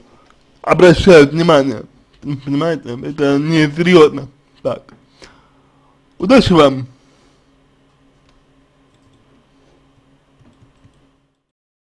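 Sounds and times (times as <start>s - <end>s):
steady low hum: 0.0s - 11.5s.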